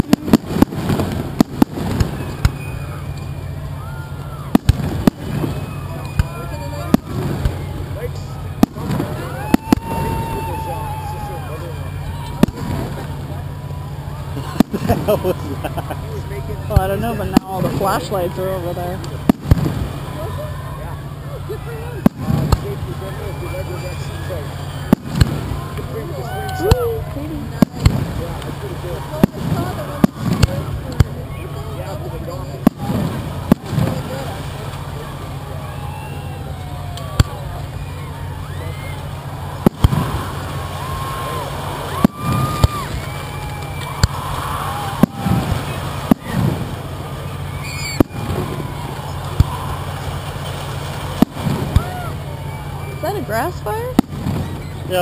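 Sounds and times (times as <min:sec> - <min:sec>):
fireworks launching and bursting: 0:00.0 - 0:21.2, 0:22.0 - 0:23.0, 0:23.6 - 0:26.0, 0:26.6 - 0:31.3, 0:32.6 - 0:35.1, 0:39.0 - 0:55.0.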